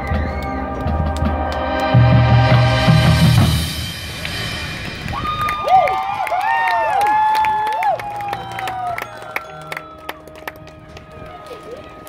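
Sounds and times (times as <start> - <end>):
crowd whoop: 0.0 - 1.2, 5.1 - 10.5
crowd clapping: 0.0 - 2.8, 4.2 - 12.0
band winds holding soft chord: 0.0 - 5.8.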